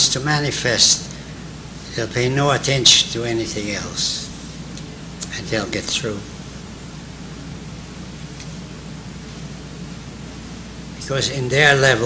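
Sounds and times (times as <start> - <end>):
man speaking: 0.0 - 1.1, 1.9 - 4.4, 5.2 - 6.4, 11.0 - 12.0
low hum and hiss: 0.0 - 12.0.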